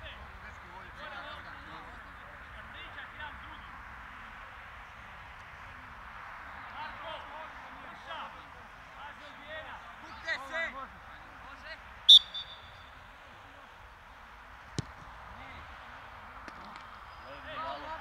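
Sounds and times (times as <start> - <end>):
referee's whistle blast: 12.1 - 13.0
ball being kicked: 14.7 - 15.1.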